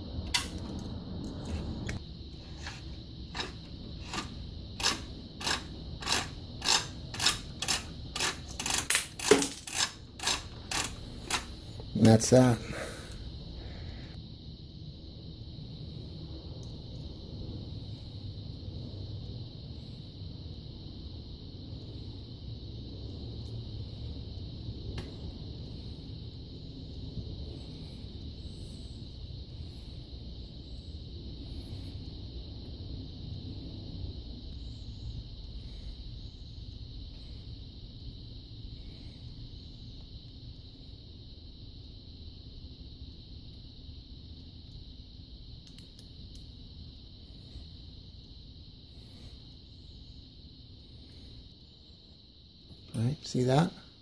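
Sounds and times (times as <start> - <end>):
constant high hiss: 0.0 - 54.0
low background rumble: 12.9 - 52.7.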